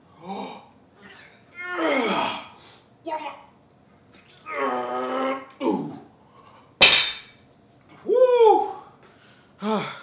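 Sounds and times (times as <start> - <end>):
metal bar clanking: 6.8 - 7.3.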